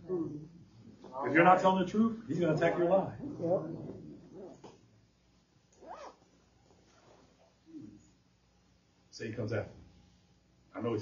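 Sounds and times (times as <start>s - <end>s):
faint vocal murmurs: 0.0s - 1.5s, 2.6s - 4.8s.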